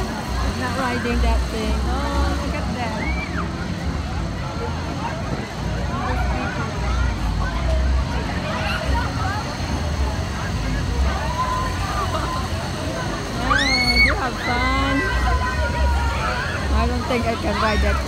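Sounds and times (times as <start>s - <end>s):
crowd chatter: 0.0s - 18.0s
low rumble of ride machinery: 0.0s - 18.0s.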